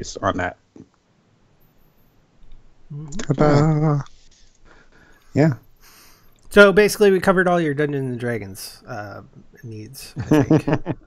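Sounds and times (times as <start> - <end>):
person speaking: 2.9 - 4.5, 5.3 - 10.9.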